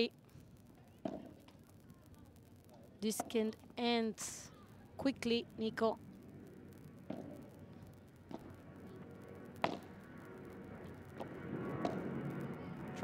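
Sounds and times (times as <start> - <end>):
faint background murmur: 0.0 - 13.0.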